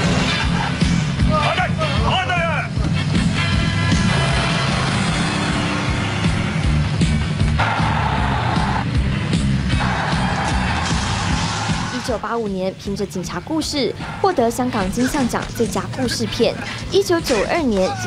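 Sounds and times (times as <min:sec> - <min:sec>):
harsh noise: 0:00.0 - 0:12.2
action film music: 0:00.0 - 0:18.0.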